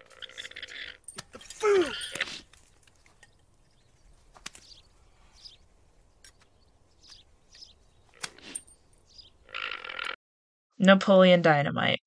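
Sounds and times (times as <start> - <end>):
faint outdoor ambience: 0.1 - 9.6
bird chirps: 3.2 - 9.5.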